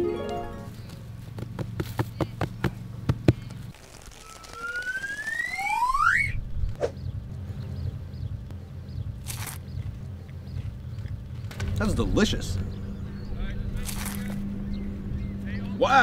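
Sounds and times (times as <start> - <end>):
plucked notes: 0.0 - 0.8
rising two-tone whistling sweep: 4.2 - 6.9
steady low rumble: 6.3 - 16.0.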